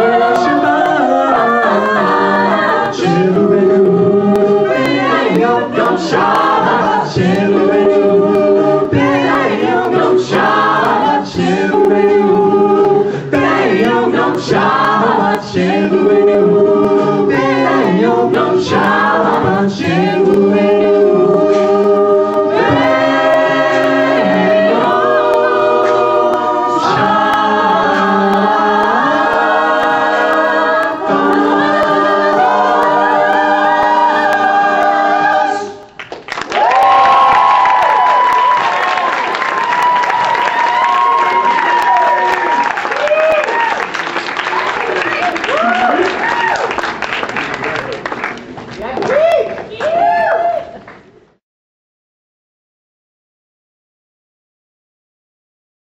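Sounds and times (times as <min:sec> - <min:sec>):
a cappella group singing in harmony: 0:00.0 - 0:36.0
audience applause: 0:35.9 - 0:51.0
audience cheering: 0:36.4 - 0:47.9, 0:48.8 - 0:50.9.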